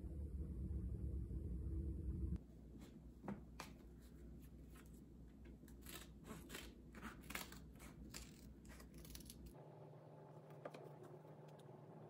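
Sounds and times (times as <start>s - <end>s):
low steady hum: 0.0s - 8.2s.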